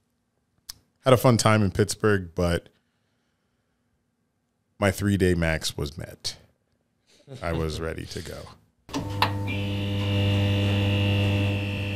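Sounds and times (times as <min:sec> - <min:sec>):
neon sign hum: 0:07.4 - 0:11.9
high buzzing tone: 0:08.9 - 0:11.9.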